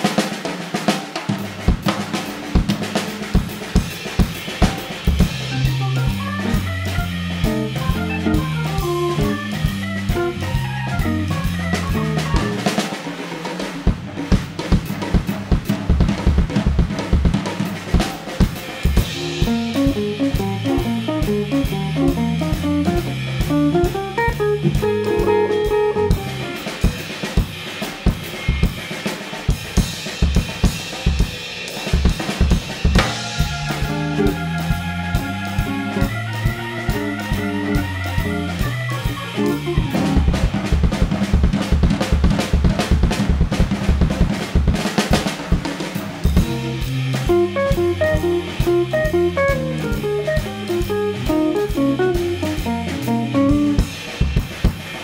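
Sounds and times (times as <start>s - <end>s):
organ: 0.0s - 15.1s, 15.7s - 55.0s
jazz drum kit: 0.0s - 55.0s
guitar: 1.3s - 13.2s, 17.0s - 45.2s, 45.9s - 55.0s
low bass line: 5.3s - 12.6s, 19.2s - 26.4s, 46.4s - 53.8s.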